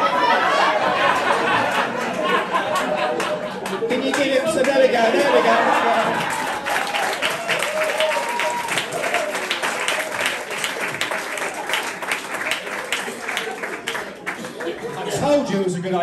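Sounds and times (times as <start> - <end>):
audience laughing: 0.0 - 7.2, 9.0 - 15.6
audience clapping: 1.0 - 15.2.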